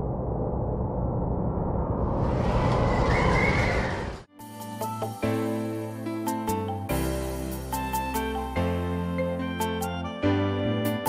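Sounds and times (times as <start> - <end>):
rumbling whoosh: 0.0 - 4.3.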